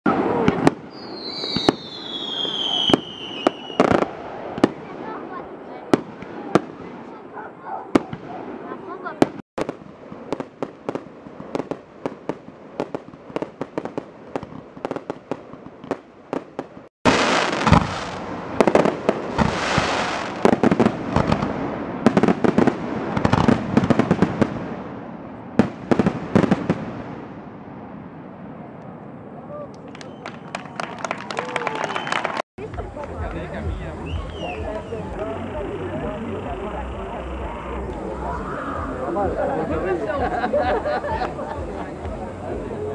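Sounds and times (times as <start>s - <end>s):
fireworks crackling: 0.1s - 29.1s, 29.7s - 42.9s
fireworks bursting: 0.1s - 29.2s, 29.8s - 42.9s
falling whistle: 31.6s - 32.4s, 34.0s - 35.2s.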